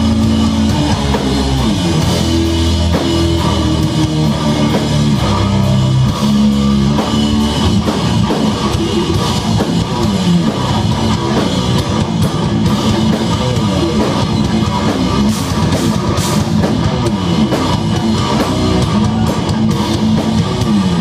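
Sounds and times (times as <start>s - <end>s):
drum kit: 0.0s - 21.0s
guitar and bass chords: 0.0s - 21.0s.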